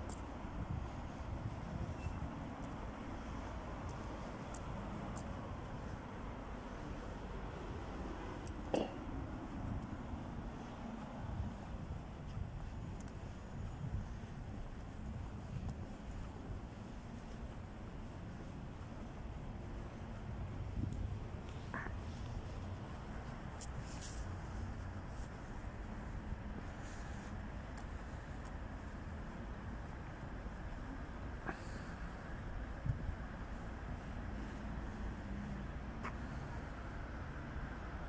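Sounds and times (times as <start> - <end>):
low city street rumble: 0.0 - 38.0.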